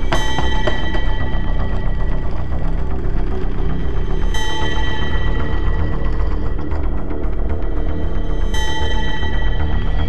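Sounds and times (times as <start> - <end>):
dark music with rattling rhythm: 0.0 - 10.0.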